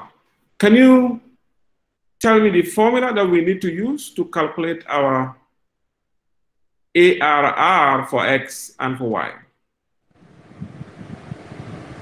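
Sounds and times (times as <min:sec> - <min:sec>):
steady microphone hiss: 0:00.0 - 0:01.6, 0:07.0 - 0:12.0
low wind rumbles on microphone: 0:10.1 - 0:12.0.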